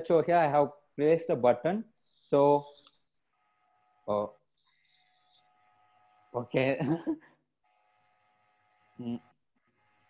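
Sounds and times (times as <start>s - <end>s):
faint multi-tone whine: 1.9s - 6.7s
person laughing: 6.6s - 7.4s.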